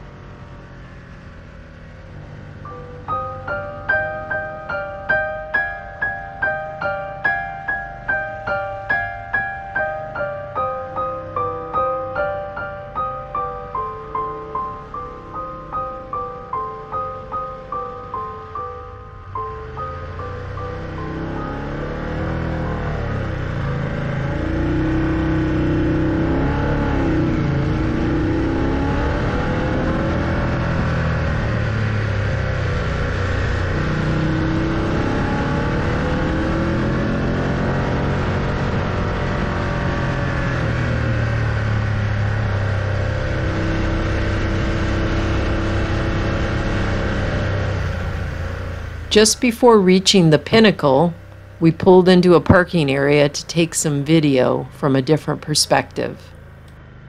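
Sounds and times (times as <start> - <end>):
motorcycle engine revving: 0.0 - 57.0
road noise: 0.0 - 57.0.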